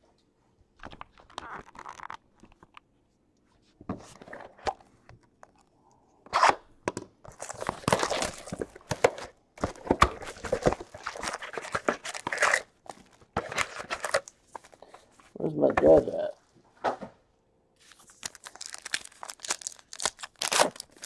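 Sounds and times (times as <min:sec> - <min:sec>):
cardboard tearing and crunching: 0:07.4 - 0:12.7, 0:17.9 - 0:21.0.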